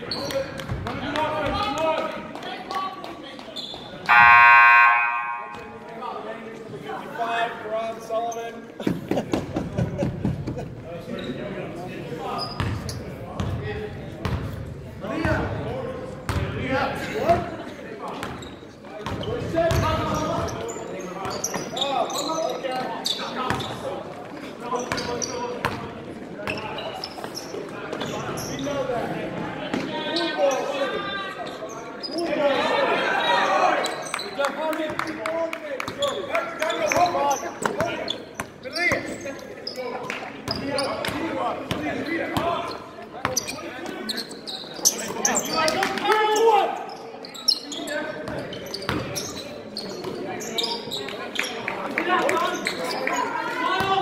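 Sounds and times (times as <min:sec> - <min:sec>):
players shouting: 0:04.1 - 0:05.8.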